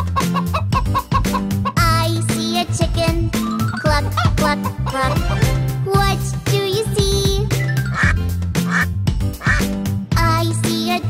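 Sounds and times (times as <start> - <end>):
duck quacking: 0.0 - 1.8, 4.0 - 5.4, 7.9 - 9.7
bouncy children's song: 0.0 - 8.2, 10.0 - 11.0.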